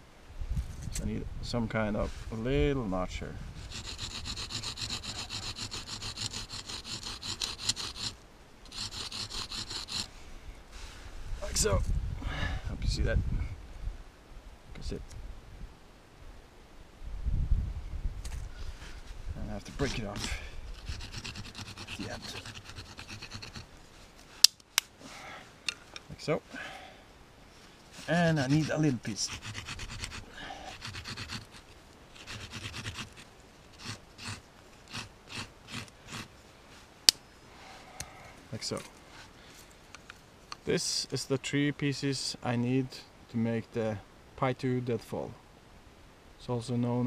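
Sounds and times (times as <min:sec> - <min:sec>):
stick rasping against rock: 0:03.6 - 0:10.1, 0:19.7 - 0:23.7, 0:27.9 - 0:36.3
stick snapping: 0:24.4 - 0:24.9.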